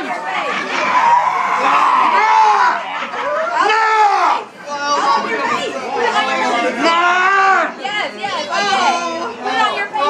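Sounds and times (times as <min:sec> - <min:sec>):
loud crowd chatter: 0:00.0 - 0:10.0.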